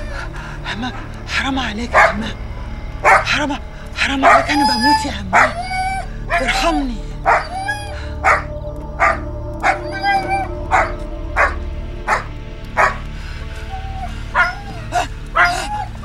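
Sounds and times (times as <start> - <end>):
low music score: 0.0 - 16.0
dog barking: 1.9 - 2.4, 3.0 - 3.4, 4.2 - 13.1, 14.0 - 16.0.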